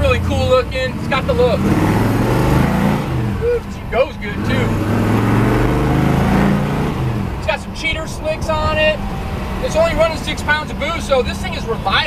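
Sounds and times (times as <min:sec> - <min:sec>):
supercharged engine running: 0:00.0 - 0:11.8
man talking: 0:03.4 - 0:04.8, 0:07.4 - 0:09.0, 0:09.6 - 0:12.0.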